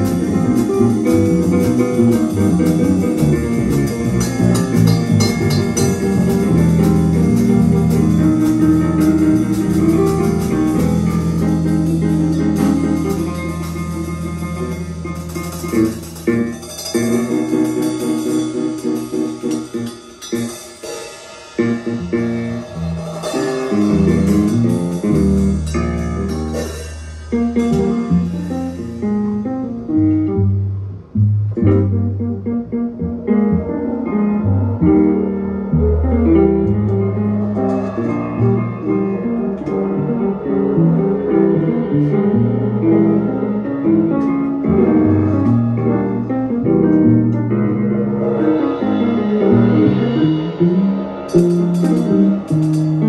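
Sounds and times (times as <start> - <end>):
plucked bass: 0.0 - 20.6, 21.6 - 53.0
drums: 0.0 - 53.0
jazz piano: 0.0 - 53.0.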